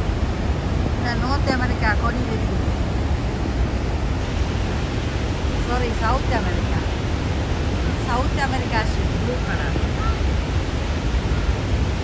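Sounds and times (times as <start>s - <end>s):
waterfall rushing: 0.0s - 12.0s.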